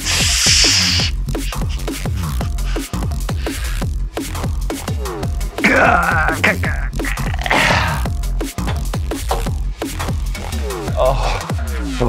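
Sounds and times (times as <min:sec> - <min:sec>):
loud burst of hissing noise: 0:00.0 - 0:01.9
electronic music with deep bass: 0:00.0 - 0:12.0.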